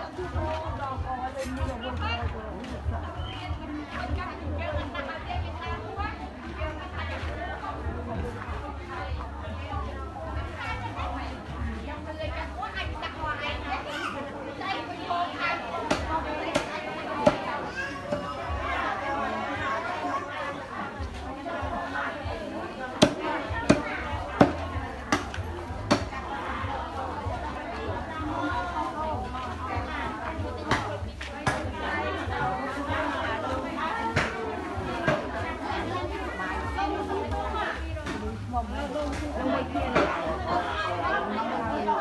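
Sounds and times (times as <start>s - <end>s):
people chattering: 0.0s - 42.0s
voices talking over each other: 0.0s - 42.0s.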